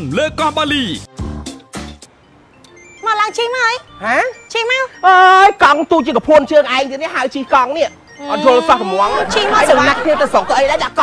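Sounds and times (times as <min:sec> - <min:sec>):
two women talking: 0:08.2 - 0:11.0.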